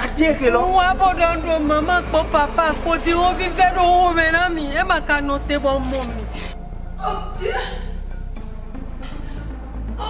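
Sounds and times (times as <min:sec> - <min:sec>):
woman sobbing: 0:06.3 - 0:08.0.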